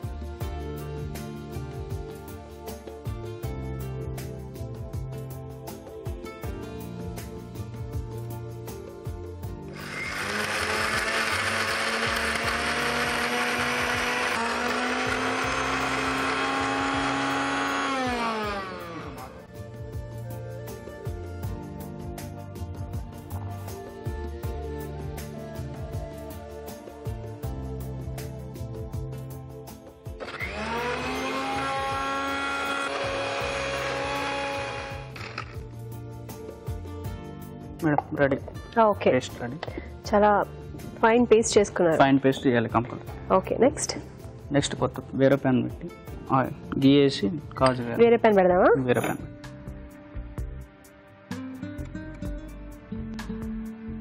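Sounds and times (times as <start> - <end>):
mixer grinder whirring: 9.7 - 19.5, 30.2 - 35.6.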